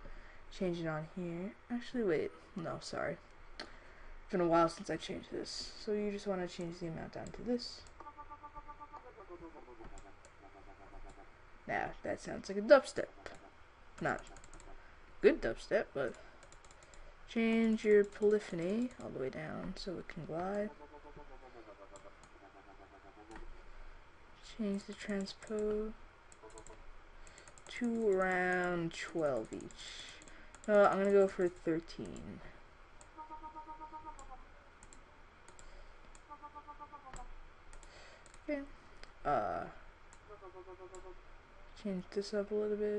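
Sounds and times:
wobbling synthesizer notes: 0:08.0 - 0:11.0
computer mouse clicks: 0:09.8 - 0:11.2, 0:13.3 - 0:14.8, 0:16.1 - 0:17.0, 0:18.0 - 0:19.1, 0:21.9 - 0:22.4, 0:24.9 - 0:28.6, 0:29.4 - 0:32.2, 0:34.2 - 0:36.3, 0:37.1 - 0:38.5.

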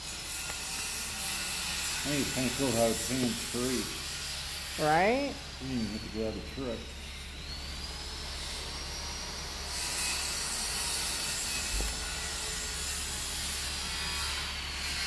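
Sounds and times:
faint high whine: 0:04.8 - 0:11.0.

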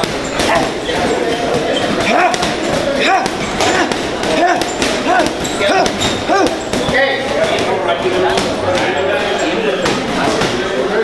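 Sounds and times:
boxing gloves hitting punching bags: 0:00.0 - 0:10.7.

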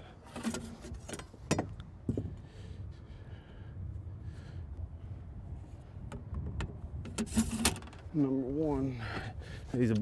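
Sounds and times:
steady low rumble: 0:01.6 - 0:10.0.

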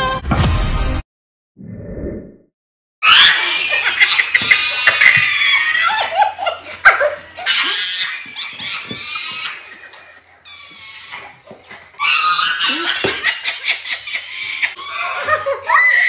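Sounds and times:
women laughing hysterically: 0:03.0 - 0:10.3, 0:12.0 - 0:16.0.

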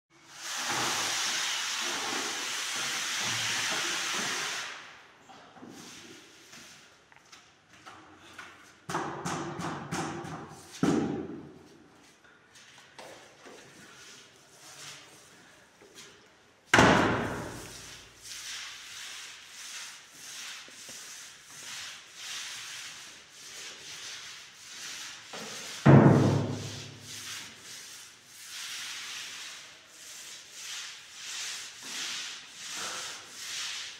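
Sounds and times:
paint roller rasping on wall: 0:00.3 - 0:05.0, 0:13.2 - 0:15.6, 0:16.9 - 0:33.9.

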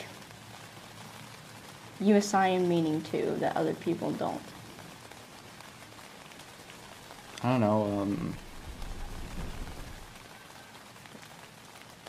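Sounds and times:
rain hissing on tent fabric: 0:00.0 - 0:12.0
raindrop ticks: 0:00.0 - 0:12.0.

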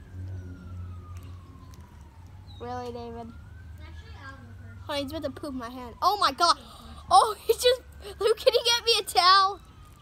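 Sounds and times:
emergency siren wailing: 0:00.0 - 0:10.0.

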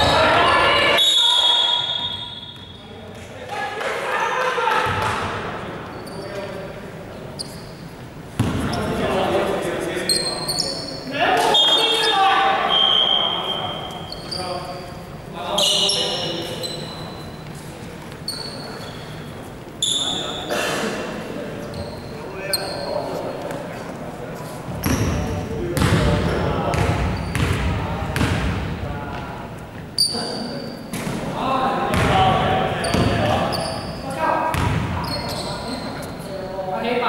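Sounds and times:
sneaker squeaks: 0:00.0 - 0:03.0, 0:05.8 - 0:06.6, 0:07.3 - 0:09.0, 0:10.0 - 0:20.6, 0:21.6 - 0:23.4, 0:24.4 - 0:28.3, 0:29.7 - 0:31.2, 0:31.9 - 0:36.5
basketball bouncing on wooden court: 0:08.4 - 0:08.7, 0:25.8 - 0:28.7, 0:31.9 - 0:33.3, 0:34.5 - 0:35.2.

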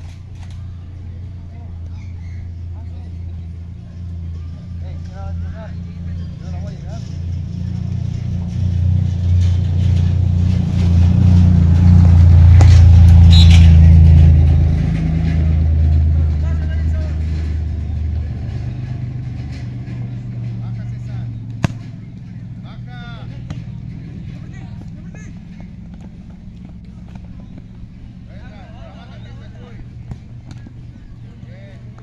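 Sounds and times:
vehicle engine passing: 0:00.0 - 0:32.0.

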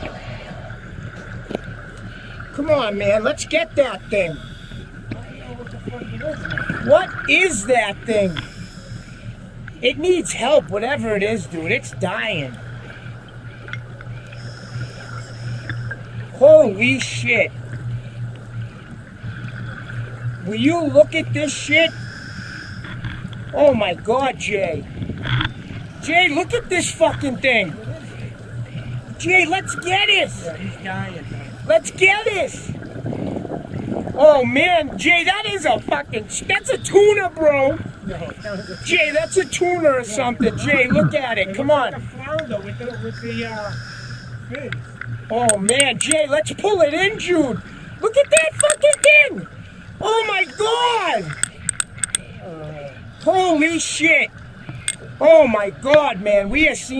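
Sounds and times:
faint high whine: 0:00.0 - 0:33.3, 0:34.2 - 0:56.9
boat motor humming: 0:00.0 - 0:56.9
man's voice: 0:38.3 - 0:43.6, 0:50.0 - 0:51.3
light clicks: 0:51.3 - 0:52.3.

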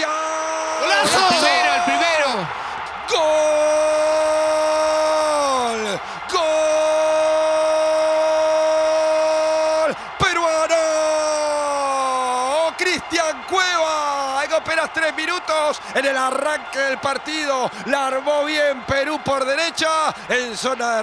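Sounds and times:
man shouting: 0:00.0 - 0:20.1
commentator's drawn-out goal cry: 0:00.0 - 0:21.0.

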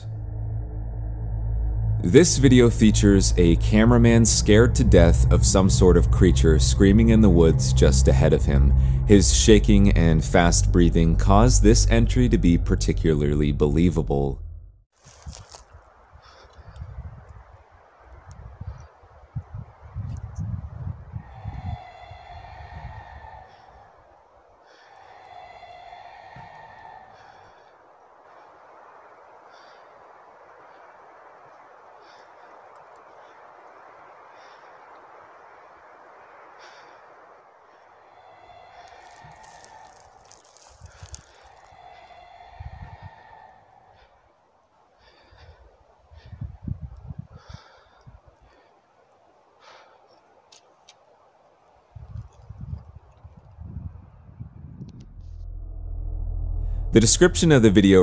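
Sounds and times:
person breathing fast and heavily: 0:21.0 - 0:35.2, 0:36.4 - 0:51.1.

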